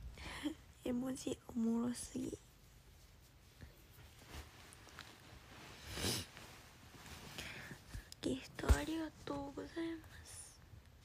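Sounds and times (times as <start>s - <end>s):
woman speaking softly: 0.4s - 2.6s, 8.2s - 10.6s.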